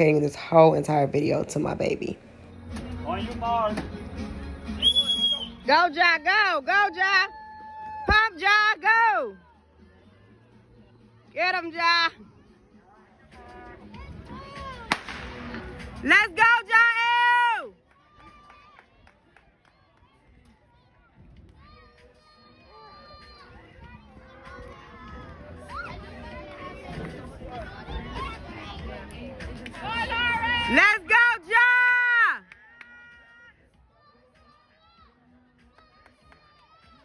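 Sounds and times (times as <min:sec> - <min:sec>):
spectator yelling and cheering: 0:16.1 - 0:17.8, 0:29.8 - 0:33.5.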